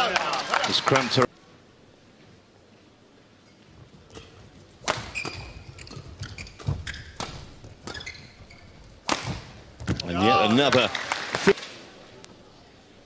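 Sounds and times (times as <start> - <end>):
court shoes squeaking: 3.5 - 10.1
racket striking shuttlecock: 4.1 - 8.1, 9.0 - 9.9.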